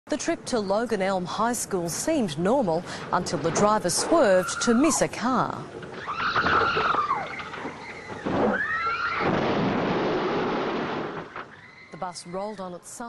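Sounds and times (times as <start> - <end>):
children screaming: 4.2 - 5.0, 5.9 - 9.5, 11.4 - 12.6
bus crash rumble: 5.8 - 11.7.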